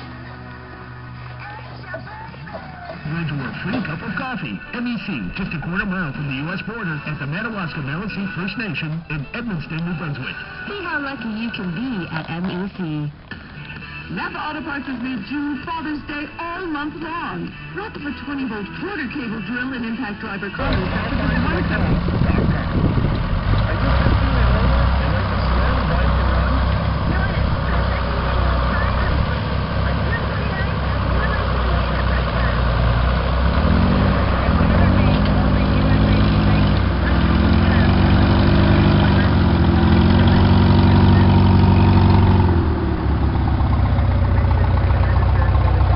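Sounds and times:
tractor engine running under load: 0.0s - 45.9s.

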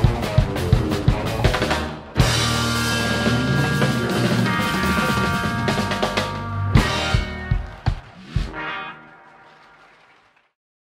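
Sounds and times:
accented band hits with drums: 0.0s - 8.7s
blues-rock band playing: 0.0s - 9.9s.

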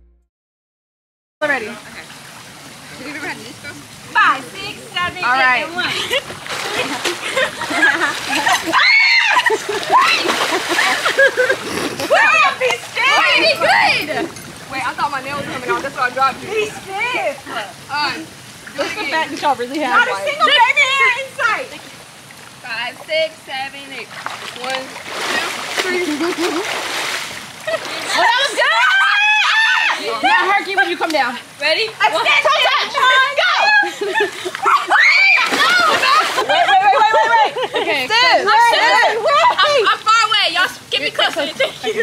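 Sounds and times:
pool water splashing: 1.4s - 42.0s
women shouting and laughing: 4.1s - 21.8s, 25.3s - 26.7s, 27.6s - 42.0s
women yelling: 7.8s - 11.2s, 12.0s - 18.2s, 19.9s - 21.7s, 27.7s - 31.0s, 31.7s - 41.3s.

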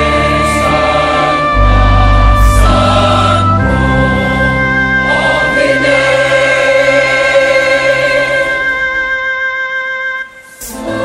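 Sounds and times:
deep bass accompaniment: 0.0s - 9.3s
choir singing held chords: 0.0s - 11.0s.

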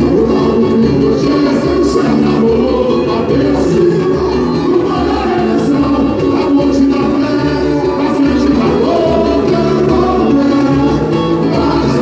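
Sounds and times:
group singing through loudspeakers: 0.0s - 12.0s
samba band playing: 0.0s - 12.0s.

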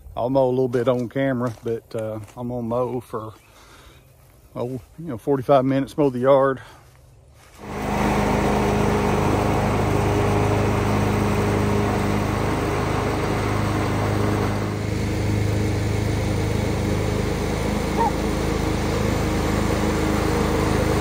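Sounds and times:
garden tractor engine mowing: 7.4s - 21.0s.

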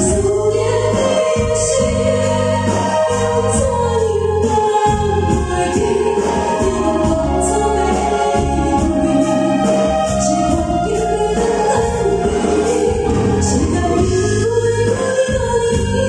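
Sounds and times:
accompanying music with beat: 0.0s - 16.0s
woman singing pop ballad: 0.0s - 16.0s.

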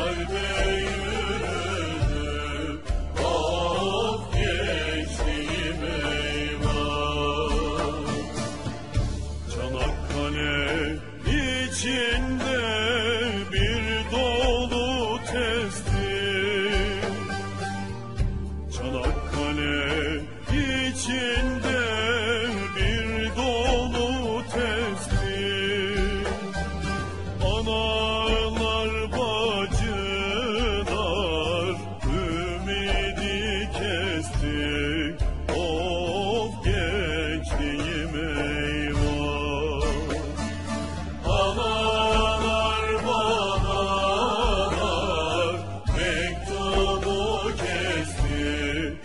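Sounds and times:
low accompaniment: 0.0s - 49.0s
slow folk song melody: 0.0s - 49.0s.

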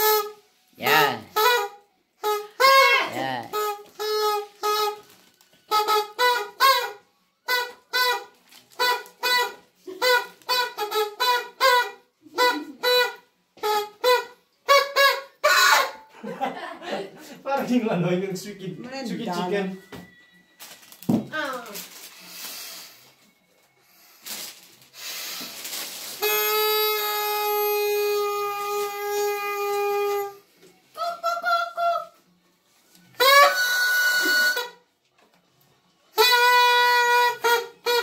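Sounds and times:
toy horn tooting: 0.0s - 16.1s, 25.0s - 32.0s, 33.1s - 34.9s, 36.1s - 38.0s.

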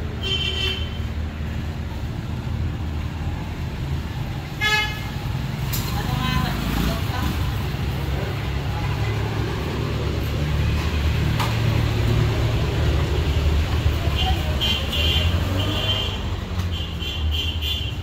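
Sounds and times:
street traffic rumbling: 0.0s - 18.0s.

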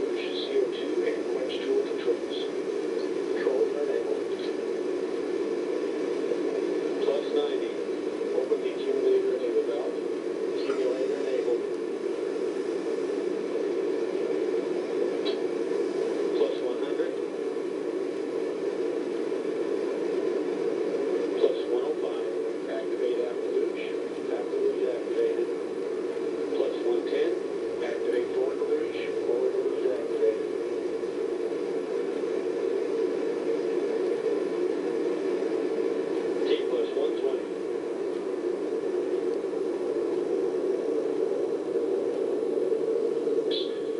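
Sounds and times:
rocket booster roar through tv speakers: 0.0s - 43.9s.

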